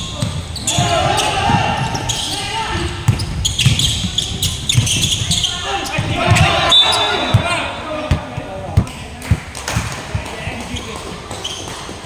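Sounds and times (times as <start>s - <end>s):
basketball bouncing on wooden floor: 3.1s - 6.5s.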